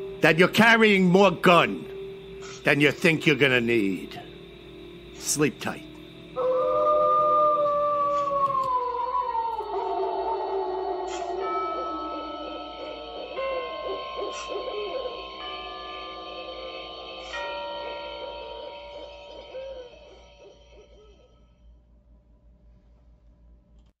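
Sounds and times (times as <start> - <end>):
owl hooting: 0.0 - 16.4
eerie synthesizer tones: 0.0 - 21.9.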